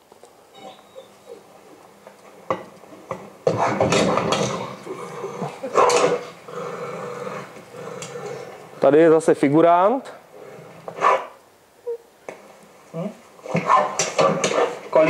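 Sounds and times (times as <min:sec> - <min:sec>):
dog growling and barking: 0:03.4 - 0:08.8, 0:10.3 - 0:11.4, 0:13.4 - 0:15.0.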